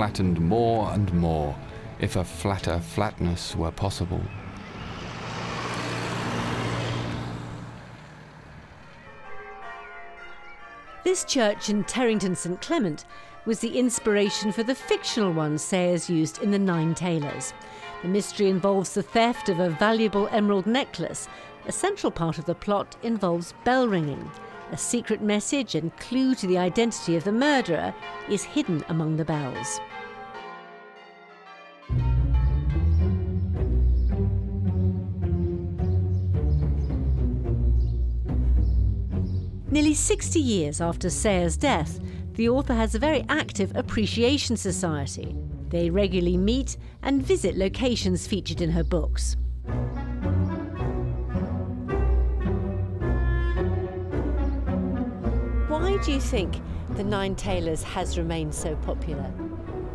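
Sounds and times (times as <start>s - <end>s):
faint church bells ringing: 0.0s - 4.6s, 7.7s - 34.0s, 51.8s - 59.9s
car passing: 1.5s - 9.3s, 56.2s - 59.9s.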